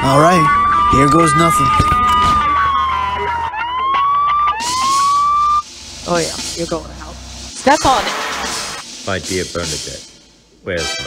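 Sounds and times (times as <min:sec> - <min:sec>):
rising electronic whines: 0:00.0 - 0:08.8.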